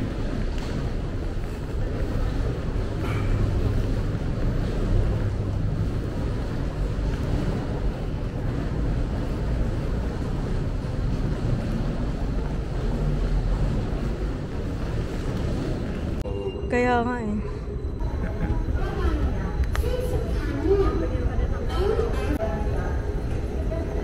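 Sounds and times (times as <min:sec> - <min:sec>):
wind rumble on microphone: 0:00.0 - 0:16.3.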